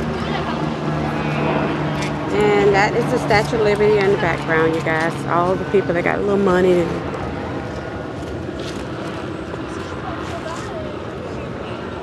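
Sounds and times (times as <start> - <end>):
outdoor background noise: 0.0 - 12.0
faint distant voices: 9.0 - 12.0.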